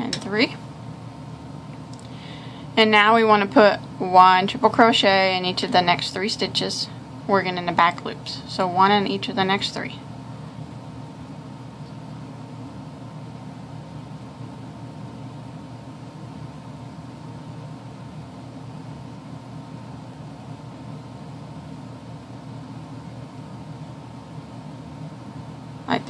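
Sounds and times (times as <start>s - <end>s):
low background hum and hiss: 0.0s - 26.0s.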